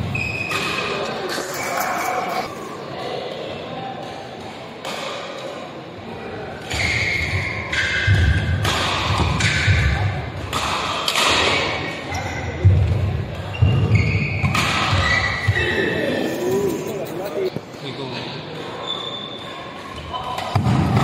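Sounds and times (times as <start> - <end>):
rackets hitting shuttlecock: 4.0 - 5.6, 6.6 - 12.0, 12.6 - 15.6.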